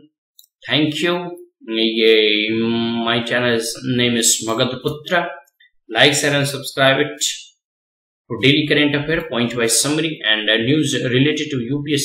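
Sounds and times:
man speaking: 0.0 - 7.5, 8.3 - 12.0.

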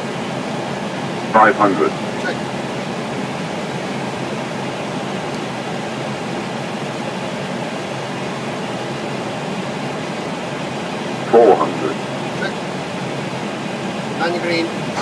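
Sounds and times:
aircraft engines: 0.0 - 15.0
airflow and ventilation rush: 0.0 - 15.0.

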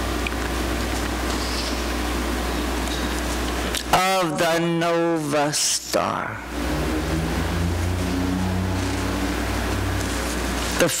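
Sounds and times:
steady low rumble: 6.1 - 10.8.

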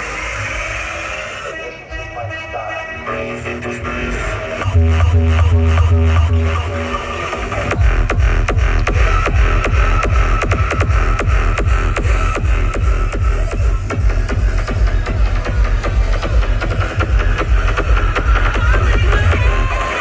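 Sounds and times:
loud live music with heavy bass: 0.0 - 20.0.

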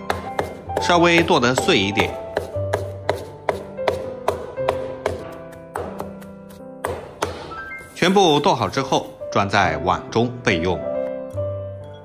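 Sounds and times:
cleaver chopping on wooden board: 0.0 - 7.5.

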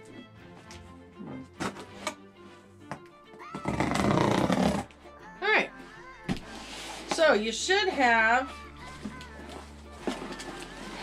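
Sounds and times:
background music: 0.0 - 11.0
cardboard tearing: 3.5 - 4.9.

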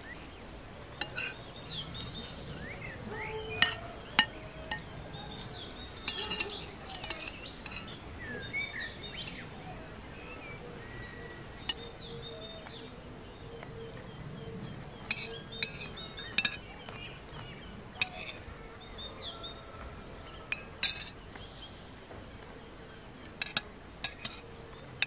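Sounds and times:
songbirds singing: 0.0 - 25.0
cutlery clinking on plates: 1.0 - 1.4, 3.5 - 8.0, 15.0 - 16.7, 18.0 - 18.5, 20.5 - 21.2, 23.4 - 24.4.

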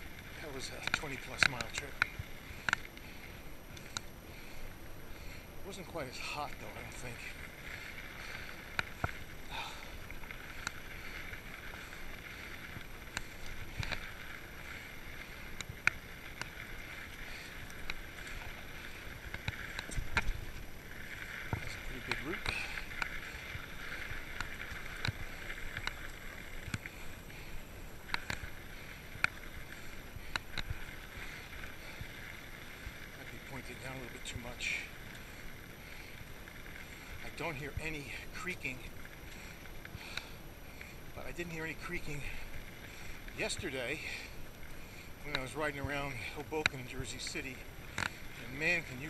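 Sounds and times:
bike tyres hissing on dirt: 0.0 - 49.0
sharp clicks and creaks: 0.0 - 49.0.

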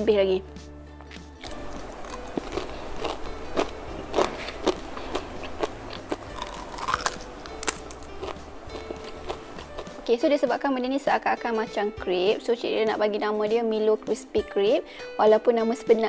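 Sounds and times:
background music: 0.0 - 16.0
crunchy chewing: 1.0 - 10.1.

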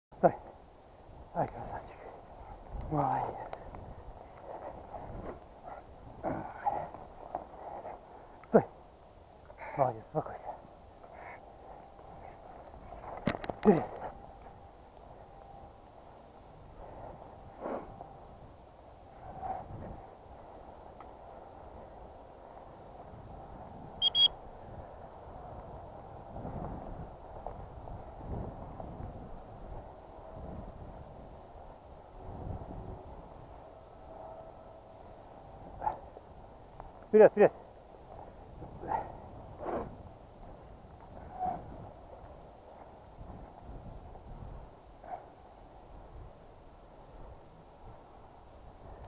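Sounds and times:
footsteps rustling through dry grass: 1.9 - 9.4, 37.7 - 44.7
short high tone pulses: 24.0 - 24.4.

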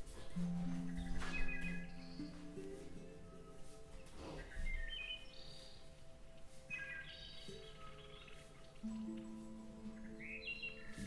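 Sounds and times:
birdsong chirps: 0.0 - 11.0
calm music of held tones: 0.0 - 11.0.

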